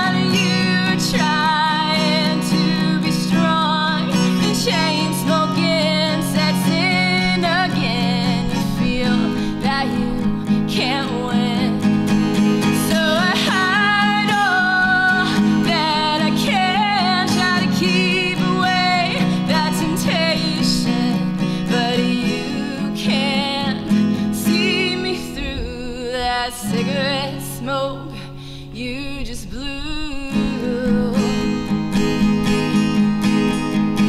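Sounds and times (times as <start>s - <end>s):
woman singing: 0.0s - 32.3s
acoustic guitar: 0.0s - 34.0s.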